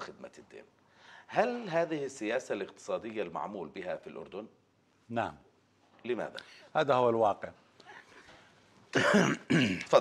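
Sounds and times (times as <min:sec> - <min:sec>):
man clearing his throat: 0:08.9 - 0:10.0.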